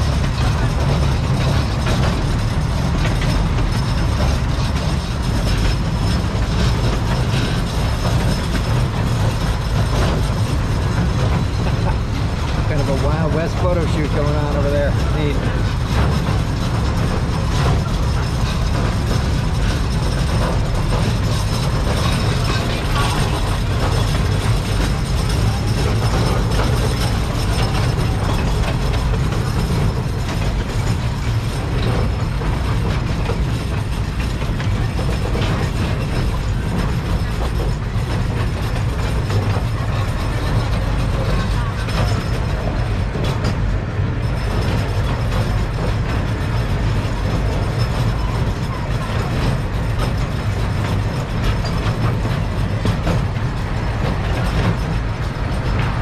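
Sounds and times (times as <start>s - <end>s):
miniature train rumbling on track: 0.0s - 56.0s
wheels clattering and rattling: 0.0s - 56.0s.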